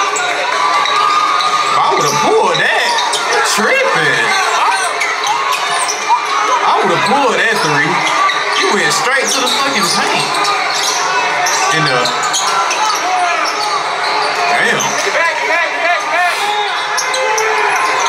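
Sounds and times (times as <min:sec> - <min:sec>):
crowd voices echoing: 0:00.0 - 0:18.0
sneaker squeaks: 0:04.4 - 0:06.6, 0:07.7 - 0:15.2, 0:16.6 - 0:18.0.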